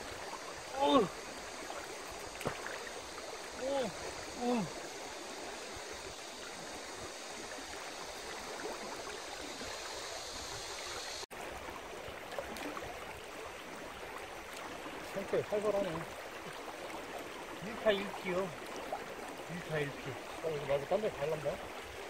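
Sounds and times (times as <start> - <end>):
river water flowing: 0.0 - 22.0.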